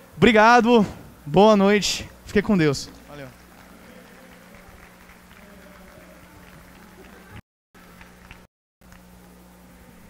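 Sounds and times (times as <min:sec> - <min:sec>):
steady low hum: 0:00.0 - 0:10.0
crowd murmur: 0:03.0 - 0:07.4.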